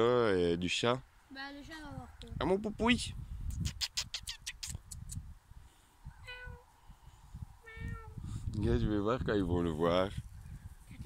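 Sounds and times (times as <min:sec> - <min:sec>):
kitten meowing: 0:06.2 - 0:06.6, 0:07.7 - 0:08.2.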